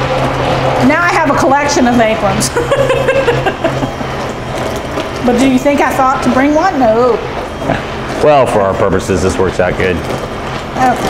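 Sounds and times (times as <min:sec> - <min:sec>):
immersion blender motor humming: 0:00.0 - 0:11.0.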